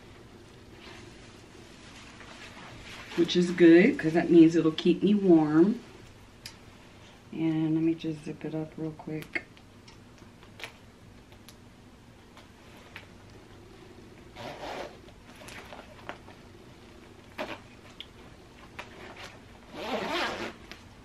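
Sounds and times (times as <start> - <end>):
coat zipper being zipped up: 14.3 - 15.0, 19.0 - 20.7
zipper clicks and fumbling: 14.4 - 15.6, 18.8 - 20.8.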